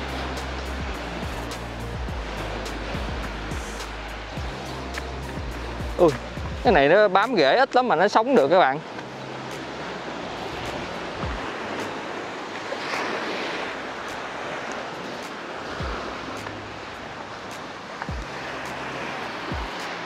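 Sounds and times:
waves washing over rocks: 0:00.0 - 0:20.0.

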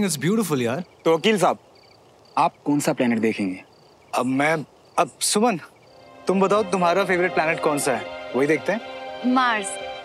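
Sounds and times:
cricket chirps: 0:00.0 - 0:10.0
background music: 0:05.9 - 0:10.0.

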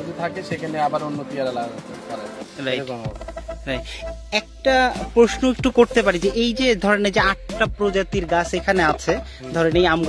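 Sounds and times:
faint background music: 0:00.0 - 0:10.0
man talking: 0:00.0 - 0:10.0.

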